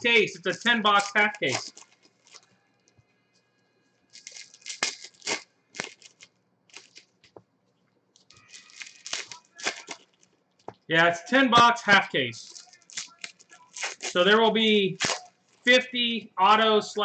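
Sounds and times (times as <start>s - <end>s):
foil wrappers crinkling and tearing: 0.0s - 2.6s, 4.1s - 7.3s, 8.2s - 10.4s, 12.4s - 14.3s, 14.9s - 15.7s.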